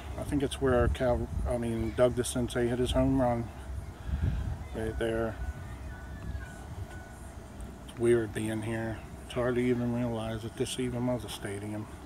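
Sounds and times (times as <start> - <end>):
wind rumble on microphone: 0.0 - 8.0
thin high tone: 4.6 - 10.5.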